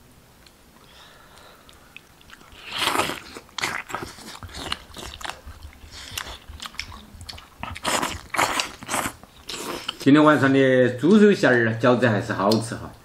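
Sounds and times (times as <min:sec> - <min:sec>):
wet chewing and smacking: 0:01.6 - 0:10.1
slurps: 0:01.7 - 0:10.4.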